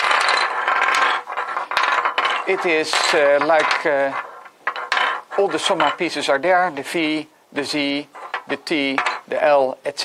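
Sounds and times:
plastic pieces clattering on table: 0:00.0 - 0:06.2.

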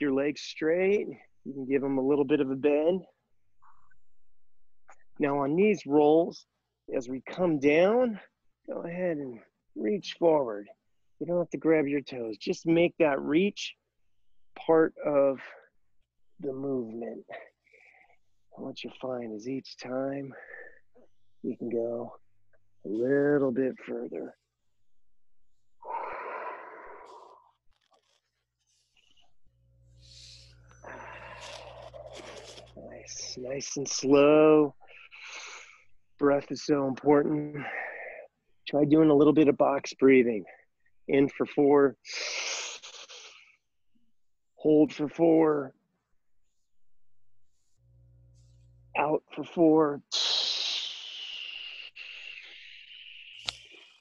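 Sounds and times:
person breathing out: 0:25.8 - 0:27.5, 0:30.0 - 0:32.7.

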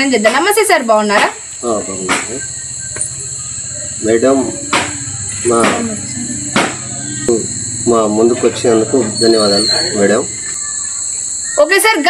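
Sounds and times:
crickets chirping: 0:00.0 - 0:12.0.

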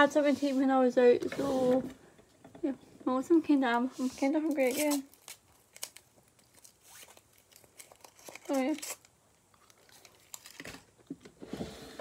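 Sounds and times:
foil wrapper crinkling: 0:04.5 - 0:11.0.

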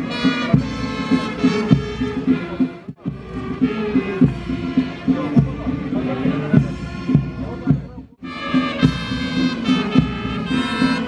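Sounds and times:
marching band music: 0:00.0 - 0:11.0.

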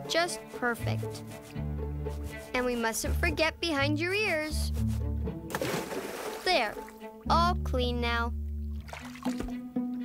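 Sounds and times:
background music: 0:00.0 - 0:10.0
bath water splashing: 0:05.5 - 0:07.1, 0:08.6 - 0:09.6.

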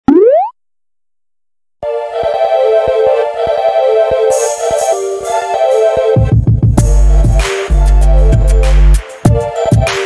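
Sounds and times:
cartoon boing sound effect: 0:00.0 - 0:00.5
keyboard music: 0:01.8 - 0:10.0.

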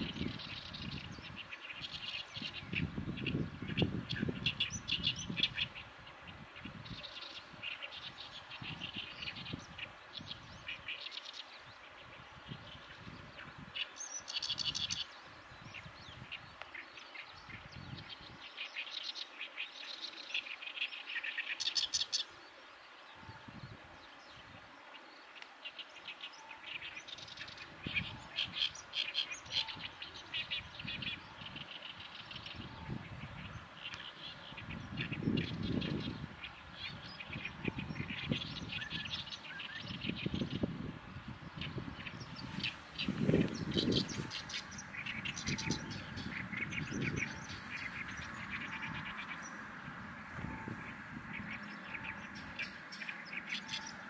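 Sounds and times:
reed warbler harsh song: 0:00.0 - 0:54.0.

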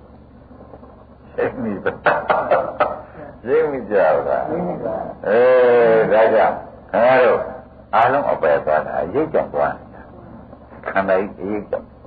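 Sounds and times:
man giving a sermon: 0:03.2 - 0:10.1.

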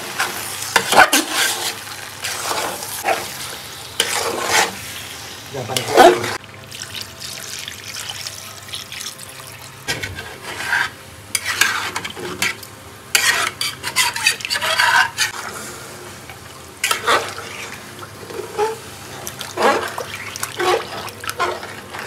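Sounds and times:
metal ladle scraping pot: 0:09.9 - 0:15.4.

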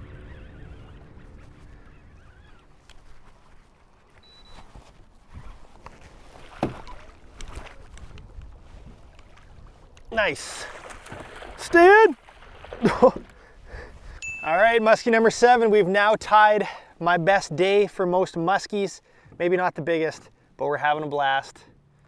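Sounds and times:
wind rumbling on microphone: 0:00.0 - 0:04.1, 0:04.7 - 0:10.2
water lapping at kayak: 0:00.0 - 0:14.2
water splashes: 0:06.0 - 0:13.6
knocks on kayak: 0:06.6 - 0:06.9.

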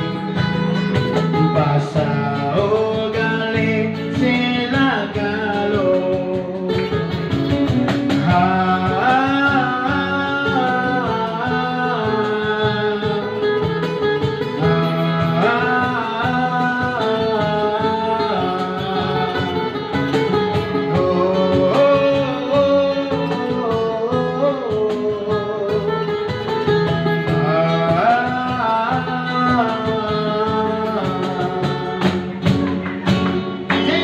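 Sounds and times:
acoustic guitar: 0:00.0 - 0:34.0
cajon: 0:00.0 - 0:34.0
electric bass: 0:00.0 - 0:34.0
man singing into a microphone: 0:01.1 - 0:32.4, 0:33.6 - 0:34.0.

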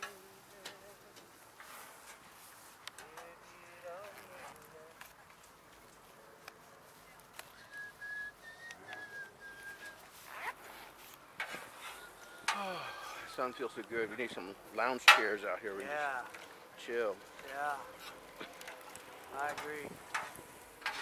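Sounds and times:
distant voices talking: 0:11.5 - 0:20.8.

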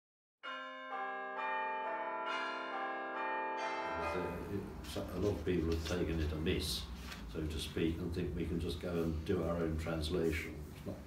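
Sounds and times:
bells ringing descending run: 0:00.4 - 0:04.8.

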